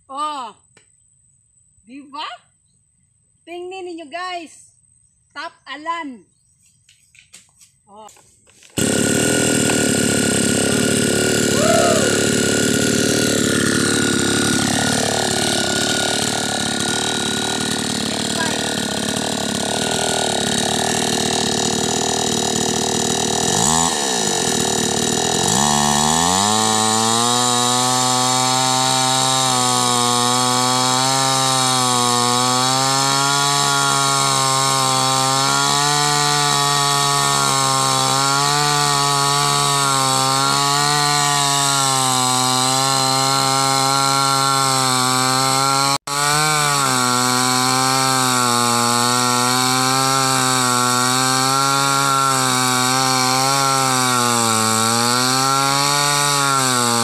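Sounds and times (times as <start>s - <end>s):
chainsaw cutting log: 6.9s - 57.0s.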